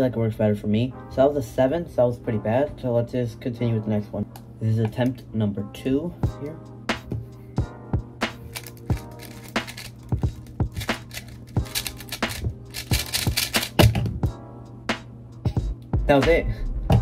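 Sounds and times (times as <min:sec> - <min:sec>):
background music: 0:00.0 - 0:17.0
puzzle cube clicking: 0:08.5 - 0:14.1.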